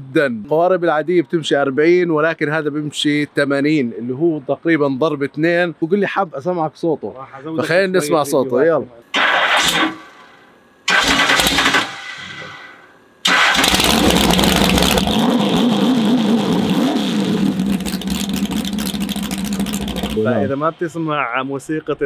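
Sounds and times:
boat engine starting and running: 9.1s - 10.3s, 10.9s - 20.7s.

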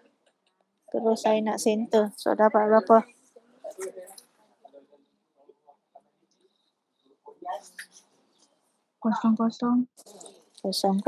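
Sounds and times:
person speaking faintly: 3.6s - 5.6s.

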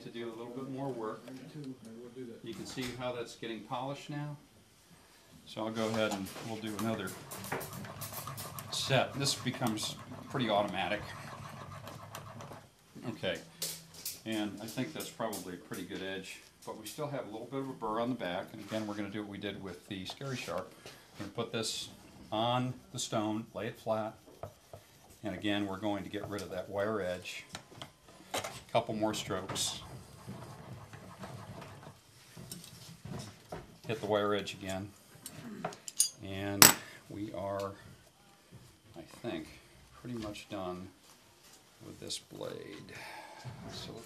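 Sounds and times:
low room hum: 0.0s - 44.0s
blade scraping on whetstone: 7.2s - 12.6s.

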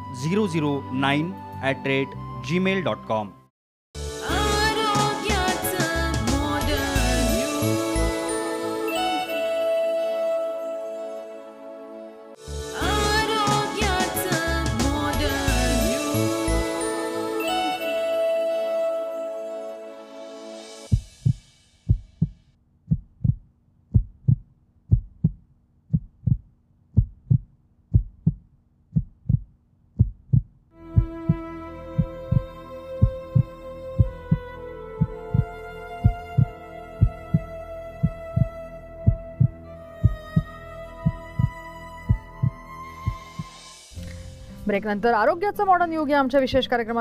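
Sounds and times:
slow music with held tones: 4.0s - 21.0s, 30.8s - 44.8s
heartbeat: 20.9s - 43.6s.

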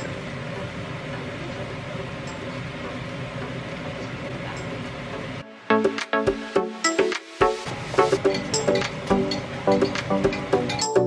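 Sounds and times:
extractor fan running: 0.0s - 6.8s, 7.5s - 11.0s.

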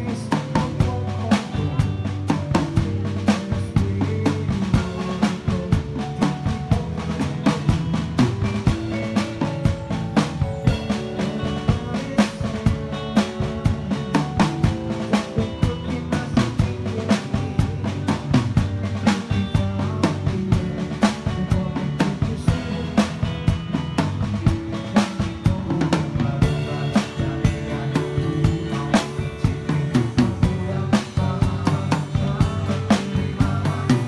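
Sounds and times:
drum kit beat: 0.0s - 34.0s
sustained bass and chords: 0.0s - 34.0s.

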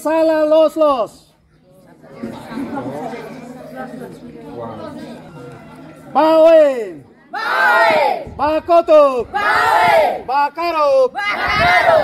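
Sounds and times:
children chattering: 1.3s - 6.2s, 6.9s - 8.2s.

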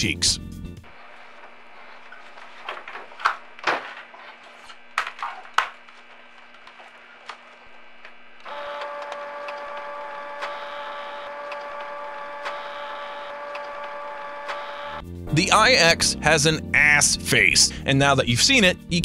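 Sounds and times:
photocopier whining hum: 0.8s - 15.0s.

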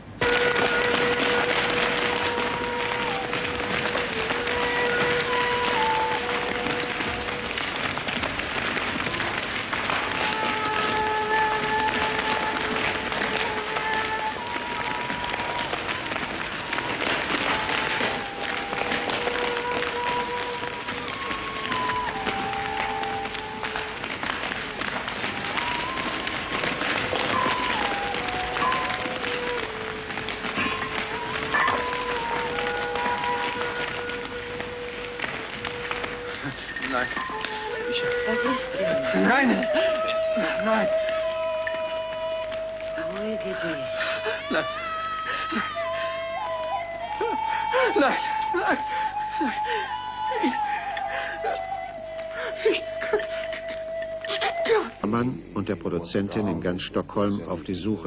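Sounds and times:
long held tones: 0.0s - 56.7s.

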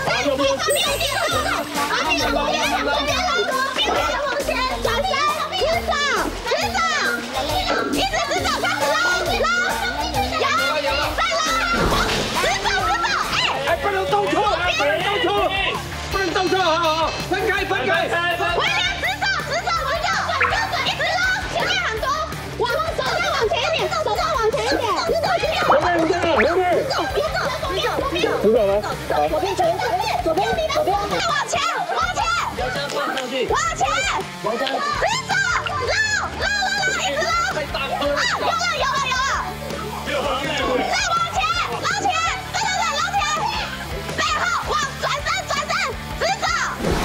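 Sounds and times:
background music: 0.0s - 47.0s
people shouting excitedly: 0.0s - 47.0s.

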